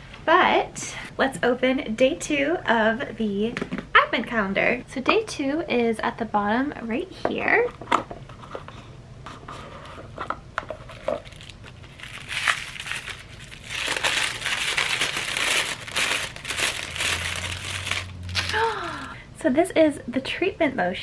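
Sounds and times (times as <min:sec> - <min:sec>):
tissue paper crinkling: 0:10.8 - 0:19.1.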